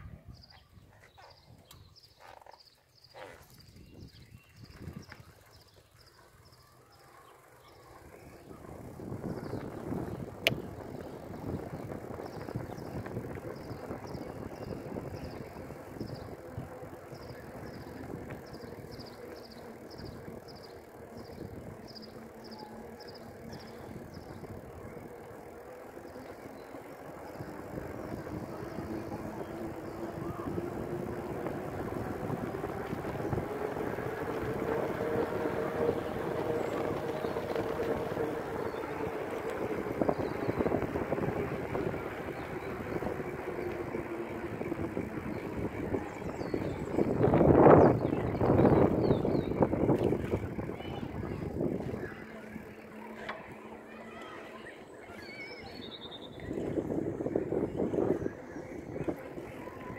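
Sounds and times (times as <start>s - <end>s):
bicycle tyres on tarmac: 0.4s - 59.9s
hum rising in pitch: 8.2s - 59.9s
wind noise: 8.3s - 20.5s, 27.0s - 52.2s, 56.4s - 59.9s.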